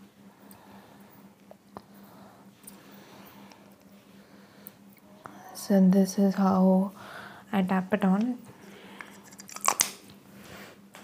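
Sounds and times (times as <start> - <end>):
makeup items clicking and rustling: 9.0 - 10.0.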